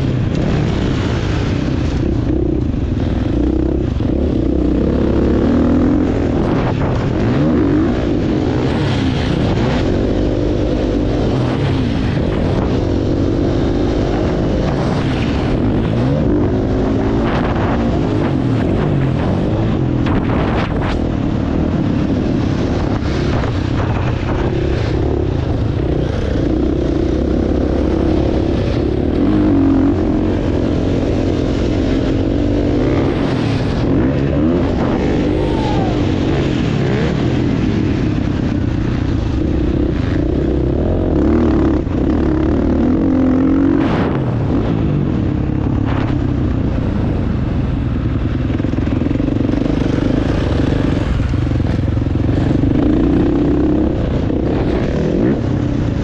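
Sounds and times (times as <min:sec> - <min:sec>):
dirt bike engine revving: 0:00.0 - 0:46.1, 0:48.2 - 0:56.0.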